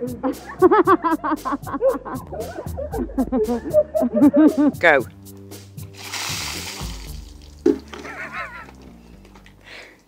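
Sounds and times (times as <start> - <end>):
background music: 0.0 - 10.0
water splashing on paving: 5.8 - 8.3.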